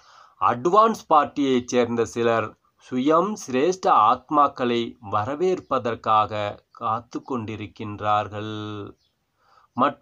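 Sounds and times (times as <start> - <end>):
man talking: 0.4 - 9.0, 9.8 - 10.0.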